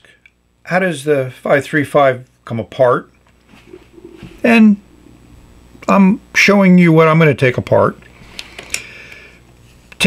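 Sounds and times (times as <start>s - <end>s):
faint rubbing: 3.5s - 5.2s.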